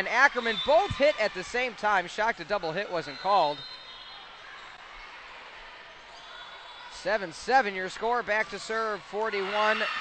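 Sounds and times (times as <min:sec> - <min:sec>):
volleyball court noise: 0:00.0 - 0:10.0.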